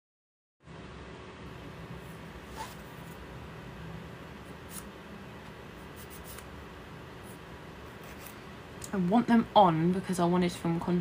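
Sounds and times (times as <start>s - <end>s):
low room noise: 0.6s - 11.0s.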